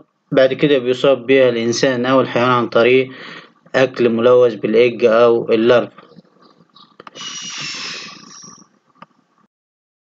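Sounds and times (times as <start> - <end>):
hissing with thin high tone: 7.1 - 8.7.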